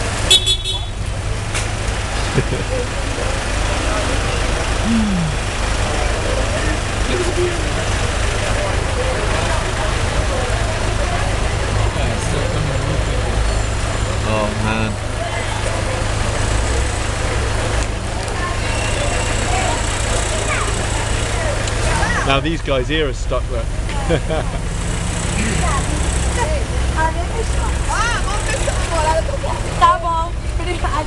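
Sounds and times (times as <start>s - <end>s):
vehicle engines idling in traffic: 0.0s - 31.0s
people laughing: 2.2s - 3.3s, 23.9s - 24.8s
brief voices: 4.8s - 5.5s.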